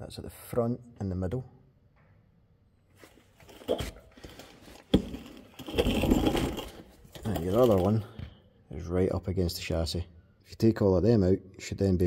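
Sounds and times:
phone handling rustling and scraping: 3.0s - 8.0s.

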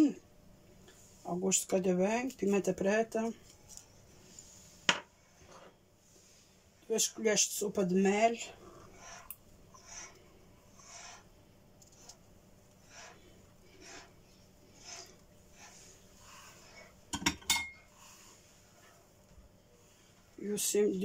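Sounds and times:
utensils scraping a pot: 8.1s - 19.0s
utensils clinking: 17.1s - 17.8s.

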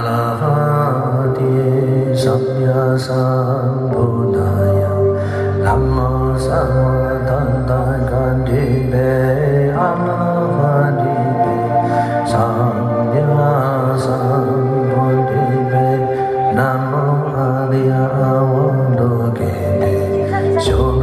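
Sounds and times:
man chanting into a microphone: 0.0s - 21.0s
sustained backing music: 0.0s - 21.0s.

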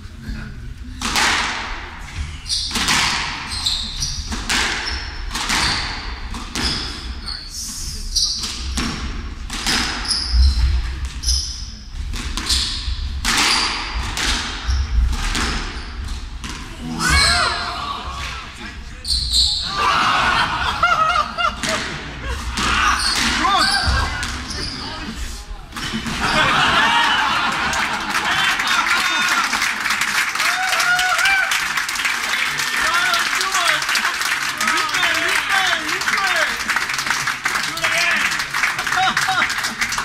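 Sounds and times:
squash ball hits: 1.0s - 1.9s, 2.6s - 3.6s, 4.2s - 7.0s, 8.4s - 11.2s, 12.0s - 16.7s, 21.6s - 24.5s
shoe squeaks on wooden floor: 2.3s - 2.9s, 3.5s - 8.8s, 10.0s - 11.8s, 12.4s - 13.9s, 22.9s - 25.1s.

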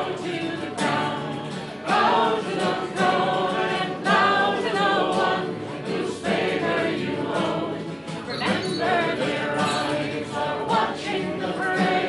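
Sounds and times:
voices singing a song: 0.0s - 12.0s.

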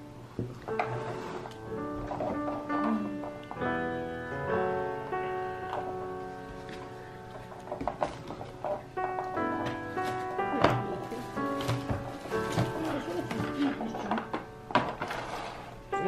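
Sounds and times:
piano-like chords: 0.0s - 16.0s.

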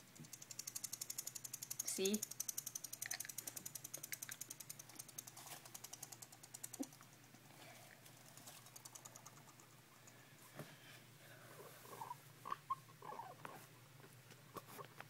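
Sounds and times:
guinea pig teeth chattering: 0.2s - 10.2s.

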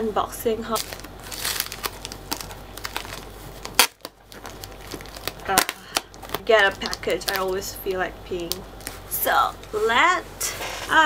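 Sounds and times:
plastic packaging crinkling: 0.7s - 9.8s.

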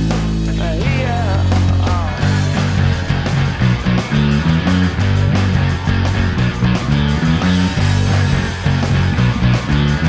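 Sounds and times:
electric bass line: 0.0s - 10.0s
rock band instrumental: 0.0s - 10.0s.

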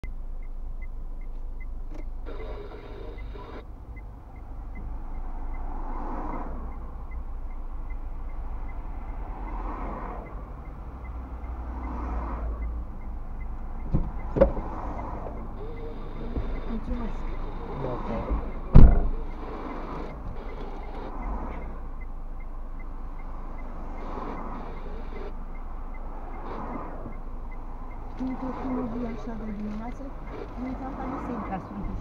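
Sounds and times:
low steady rumble: 0.0s - 5.9s, 12.3s - 32.0s
cars passing: 0.0s - 32.0s
sharp clicks: 1.2s - 32.0s
faint even ticking: 3.6s - 32.0s.

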